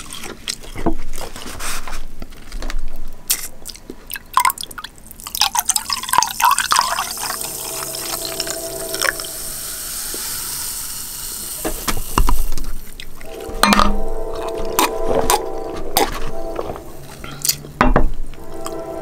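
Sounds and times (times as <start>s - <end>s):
drink pouring into glass: 4.1s - 10.8s
fizzing hiss: 6.0s - 13.3s.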